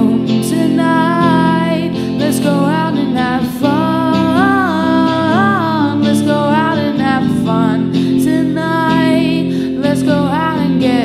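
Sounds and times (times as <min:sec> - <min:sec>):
electric guitar: 0:00.0 - 0:11.0
woman singing long held notes: 0:00.0 - 0:11.0.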